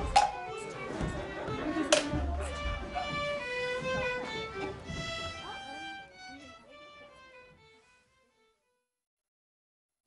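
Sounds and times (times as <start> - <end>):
violin melody: 0.0 - 8.8.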